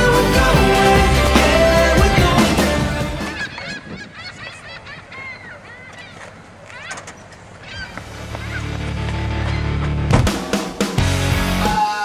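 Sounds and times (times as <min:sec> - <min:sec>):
music: 0:00.0 - 0:03.4, 0:08.1 - 0:12.0
birds calling: 0:00.0 - 0:11.0.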